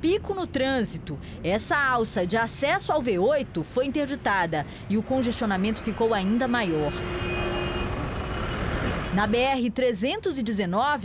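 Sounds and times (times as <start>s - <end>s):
traffic engines running: 0.0s - 10.3s.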